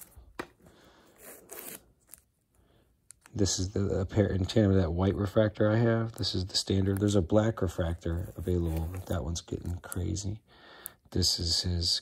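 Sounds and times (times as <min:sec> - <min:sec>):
plastic card cases scraping: 0:08.1 - 0:09.4.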